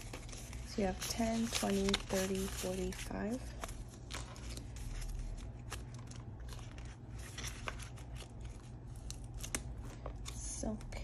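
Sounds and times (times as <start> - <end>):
paper rustling and snapping: 0.0 - 11.0.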